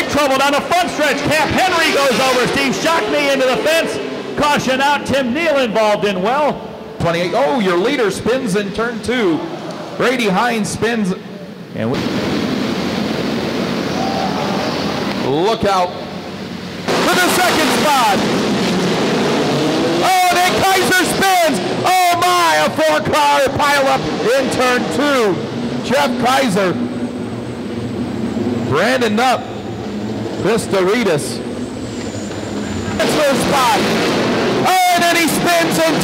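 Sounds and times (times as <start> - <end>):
race car engines roaring: 0.0 - 36.0.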